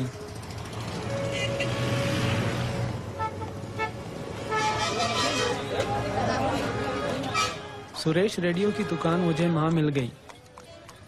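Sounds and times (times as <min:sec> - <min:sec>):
vehicle passing: 0:00.0 - 0:07.9.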